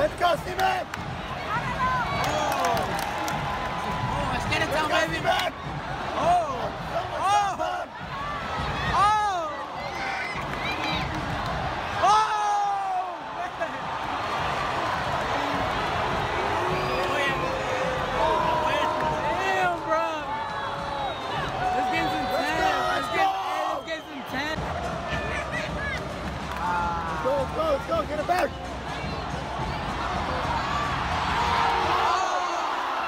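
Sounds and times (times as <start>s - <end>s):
fans shouting: 0.0s - 33.0s
stadium crowd hubbub: 0.0s - 33.0s.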